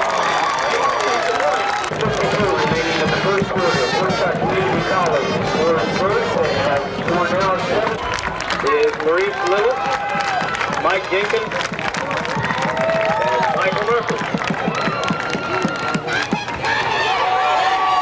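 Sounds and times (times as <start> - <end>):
crowd shouting: 0.0 - 18.0.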